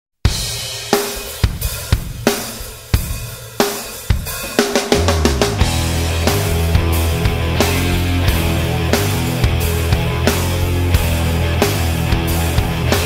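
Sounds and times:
rock drum kit: 0:00.2 - 0:13.0
low sustained bass: 0:05.6 - 0:12.9.

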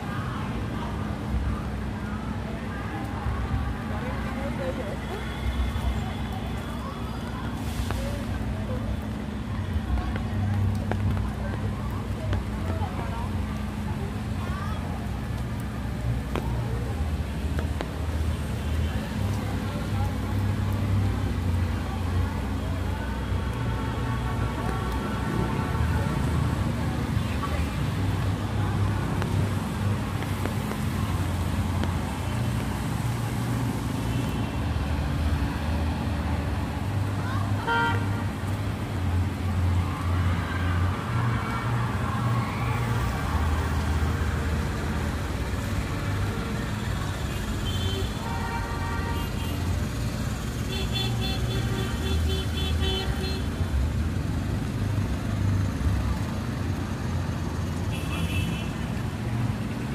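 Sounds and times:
vehicle engines rumbling: 0:00.0 - 0:59.9
voices of passers-by: 0:00.0 - 0:59.9.

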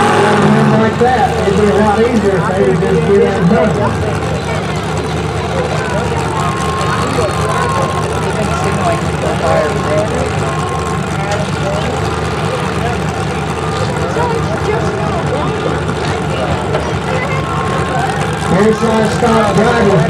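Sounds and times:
car engines idling: 0:00.0 - 0:20.0
crowd chatter: 0:00.0 - 0:20.0.

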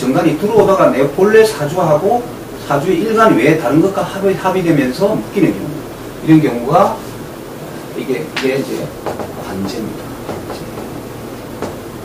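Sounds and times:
background hiss: 0:00.0 - 0:12.0
marker writing on whiteboard: 0:08.9 - 0:12.0.

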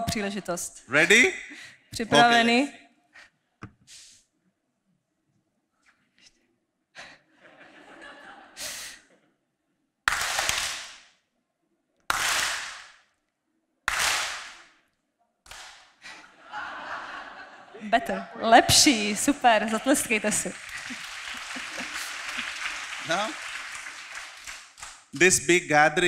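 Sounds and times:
audience clapping: 0:10.1 - 0:11.0, 0:12.1 - 0:13.0, 0:13.9 - 0:14.7, 0:15.5 - 0:16.0, 0:18.6 - 0:25.6.

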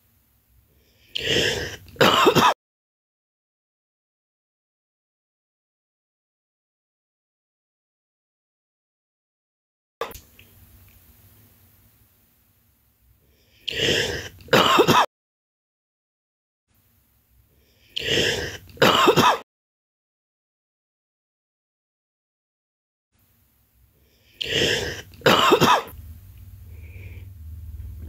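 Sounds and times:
woman clearing her throat: 0:01.2 - 0:02.6, 0:14.0 - 0:15.1, 0:18.5 - 0:19.4, 0:24.5 - 0:26.0
woman coughing: 0:01.2 - 0:02.6, 0:14.5 - 0:15.1, 0:18.5 - 0:19.4, 0:24.5 - 0:26.0.

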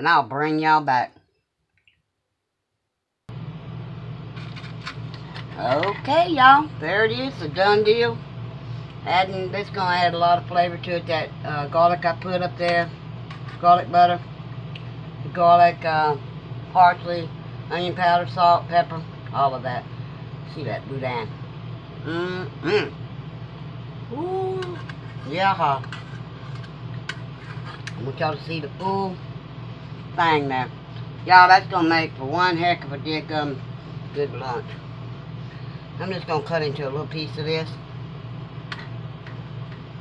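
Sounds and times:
steady low hum: 0:02.6 - 0:40.0
man humming appreciatively: 0:22.1 - 0:23.0, 0:24.1 - 0:24.8.

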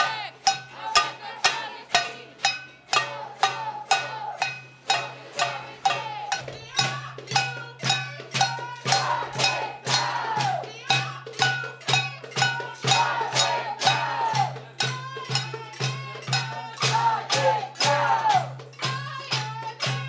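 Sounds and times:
metal pot being banged: 0:00.4 - 0:10.1.

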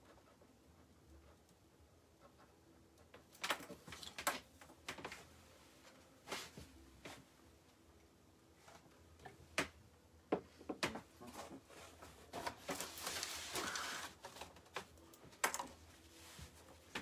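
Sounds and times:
scratchy rustle: 0:11.7 - 0:14.5.

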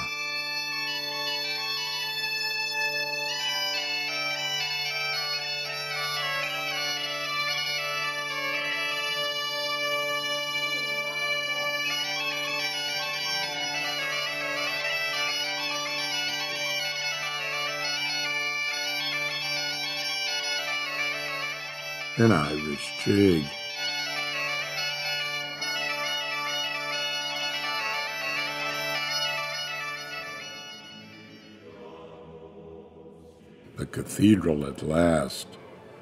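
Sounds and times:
bagpipes playing a tune: 0:00.0 - 0:32.2
bagpipe drone: 0:00.0 - 0:32.8.

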